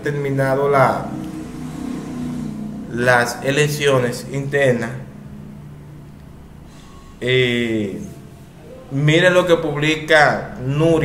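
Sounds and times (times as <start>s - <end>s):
vehicle engine running: 0.4s - 7.7s.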